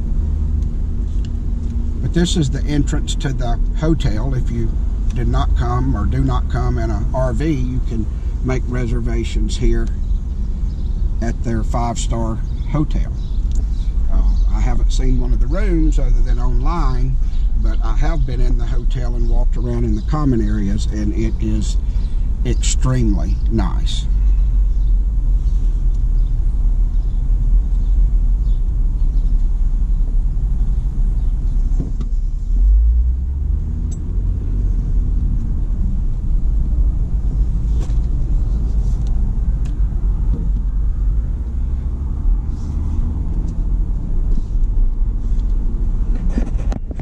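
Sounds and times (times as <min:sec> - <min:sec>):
car engine and tyres rumbling: 0:00.0 - 0:47.0.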